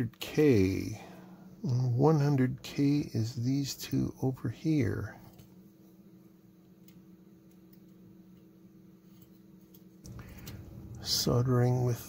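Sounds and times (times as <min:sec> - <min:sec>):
steady hum: 0:00.0 - 0:12.0
faint ticks of resistors: 0:06.6 - 0:08.5.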